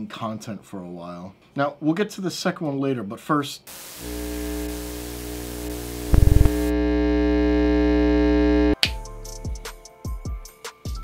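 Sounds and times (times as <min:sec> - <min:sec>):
static-like hiss: 0:03.6 - 0:08.8.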